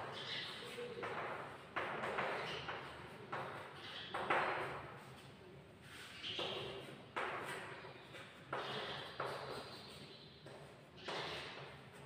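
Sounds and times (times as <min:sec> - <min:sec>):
chalk scraping on chalkboard: 0:02.6 - 0:07.6, 0:08.6 - 0:11.9.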